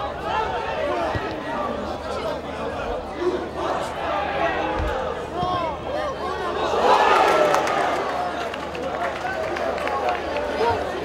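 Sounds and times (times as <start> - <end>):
small crowd noise: 0.0 - 11.0
spectators shouting: 3.2 - 8.8.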